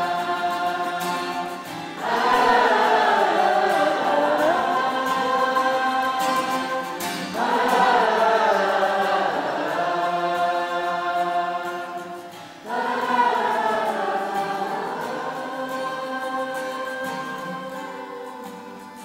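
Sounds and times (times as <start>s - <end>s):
ensemble holding long chord: 2.0s - 18.4s.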